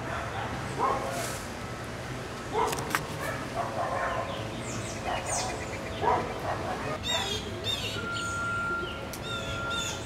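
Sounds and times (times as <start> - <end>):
distant dog barking: 0.0 - 1.2, 2.5 - 7.4
birds chirping: 3.6 - 10.0.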